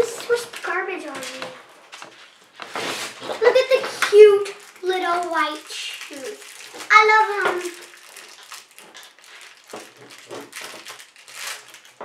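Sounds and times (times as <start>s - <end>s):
wrappers rustling: 0.0s - 12.0s.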